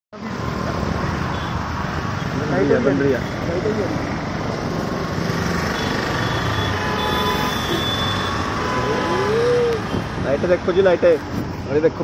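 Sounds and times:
road traffic engines: 0:00.1 - 0:12.0.

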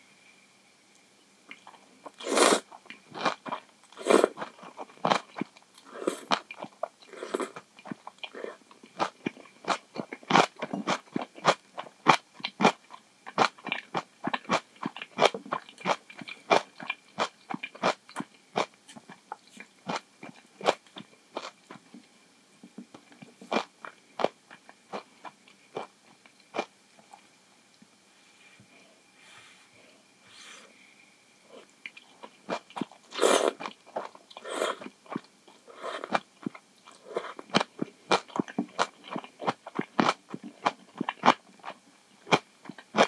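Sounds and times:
slurping noodles: 0:02.2 - 0:02.6, 0:04.0 - 0:04.5, 0:05.9 - 0:06.4, 0:07.1 - 0:07.6, 0:33.1 - 0:33.6, 0:34.4 - 0:34.9, 0:35.7 - 0:36.2.

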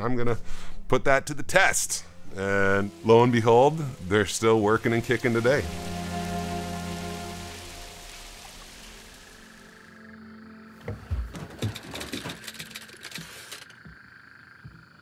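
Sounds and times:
film score music: 0:00.0 - 0:12.7
steady rain: 0:02.3 - 0:09.9.

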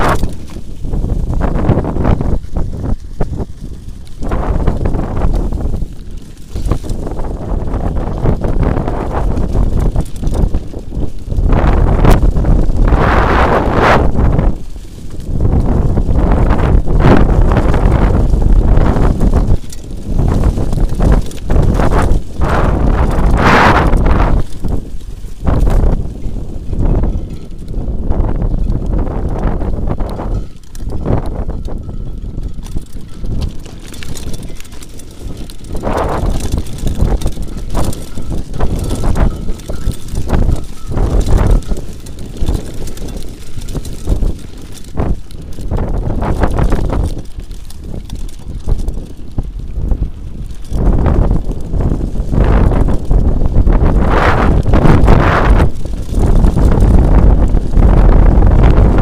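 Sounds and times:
bike rattling over bumps: 0:00.0 - 0:59.0
tyres on dirt trail: 0:00.0 - 0:59.0
wind buffeting microphone: 0:00.0 - 0:59.0.

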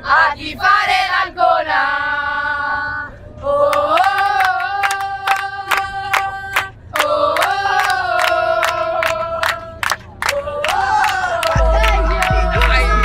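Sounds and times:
steady hand clapping: 0:04.0 - 0:13.0.

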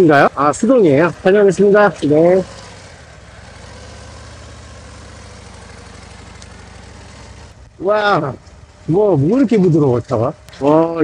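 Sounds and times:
motorcycle engine pulling away: 0:00.0 - 0:11.0.

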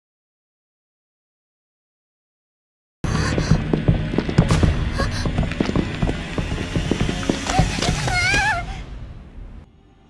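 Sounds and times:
dramatic soundtrack music: 0:03.1 - 0:10.0
knocks and impacts: 0:03.7 - 0:08.1
person crying out: 0:07.6 - 0:08.9.

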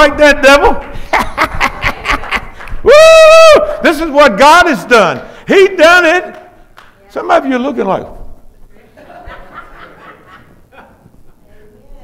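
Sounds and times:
quiet chuckling laughter: 0:08.8 - 0:11.7.

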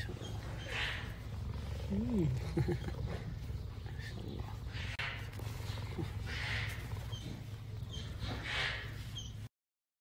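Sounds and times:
cheetah purring: 0:00.0 - 0:09.0.

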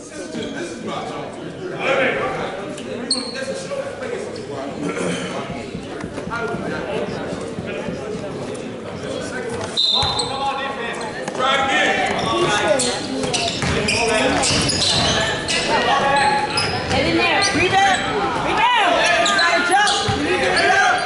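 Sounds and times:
voices in large gym: 0:00.0 - 0:21.0.

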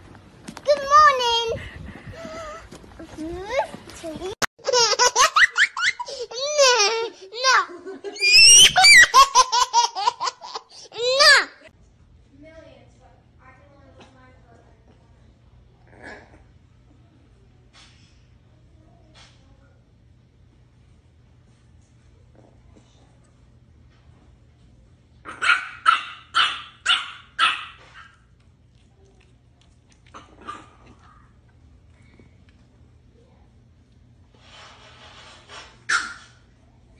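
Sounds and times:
puppy yapping: 0:25.3 - 0:28.2, 0:35.9 - 0:36.4.

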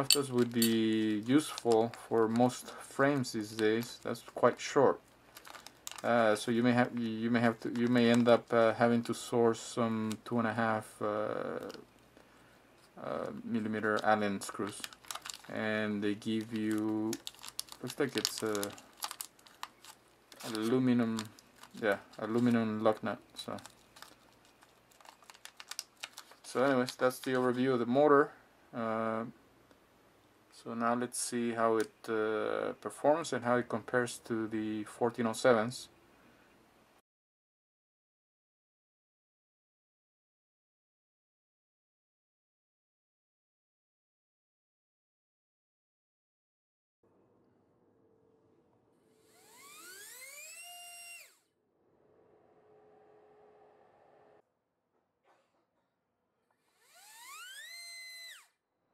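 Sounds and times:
plastic bag rustling: 0:05.1 - 0:06.6, 0:13.7 - 0:27.5
hands handling small motor clicks: 0:05.3 - 0:06.1, 0:16.4 - 0:22.6, 0:23.4 - 0:27.4
brushless motor whine: 0:49.1 - 0:51.4, 0:56.6 - 0:58.6.

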